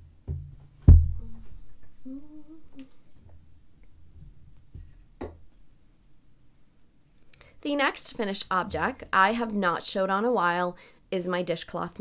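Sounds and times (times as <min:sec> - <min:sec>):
low thump: 0:00.2 - 0:01.6
woman humming: 0:01.2 - 0:03.0.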